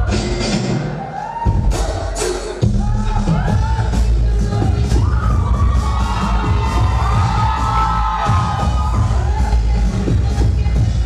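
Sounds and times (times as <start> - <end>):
audience cheering and shouting: 0.0 - 11.0
dance music with heavy bass beat: 0.0 - 11.0.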